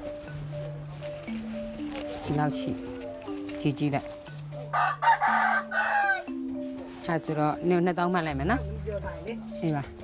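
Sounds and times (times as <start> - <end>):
background music low notes: 0.0 - 10.0
rooster crowing: 4.7 - 6.3.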